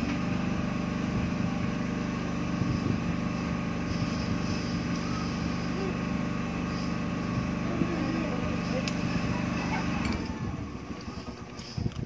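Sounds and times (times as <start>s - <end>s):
motor hum: 0.0s - 12.0s.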